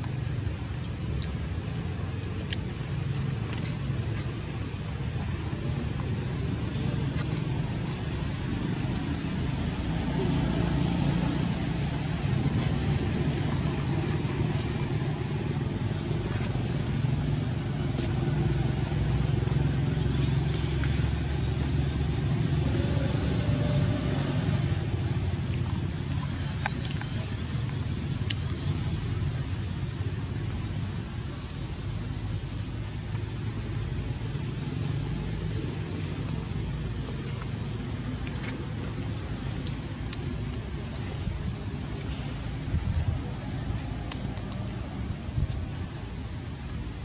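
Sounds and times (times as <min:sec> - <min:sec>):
low outdoor rumble: 0:00.0 - 0:47.0
thin high-pitched chirp: 0:15.3 - 0:15.9.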